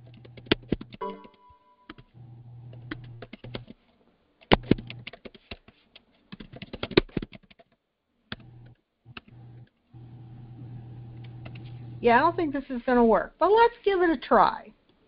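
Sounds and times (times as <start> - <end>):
typing on computer keyboard: 0.0 - 2.1, 2.9 - 3.8, 4.4 - 5.7, 6.3 - 8.5.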